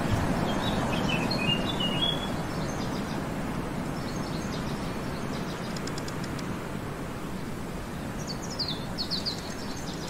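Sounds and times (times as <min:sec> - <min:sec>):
songbird chirping: 0:00.1 - 0:06.5, 0:07.3 - 0:10.0.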